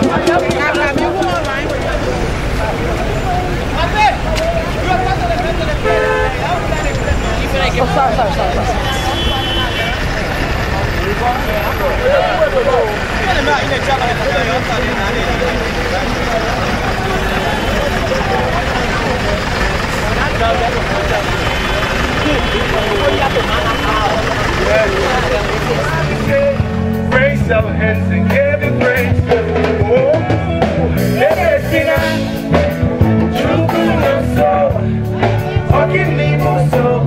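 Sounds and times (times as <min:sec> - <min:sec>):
crowd talking: 0:00.0 - 0:37.0
low steady rumble: 0:12.2 - 0:28.8.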